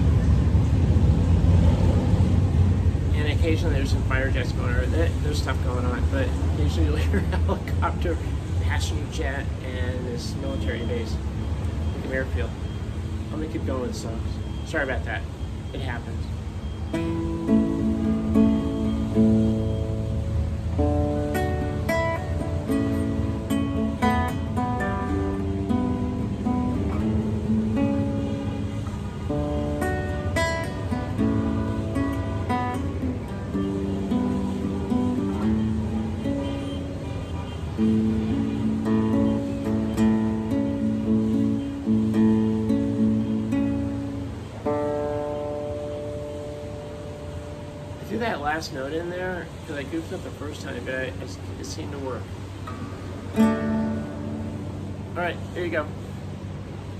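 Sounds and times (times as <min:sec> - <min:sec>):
classical guitar playing: 0:16.9 - 0:48.4, 0:52.2 - 0:56.9.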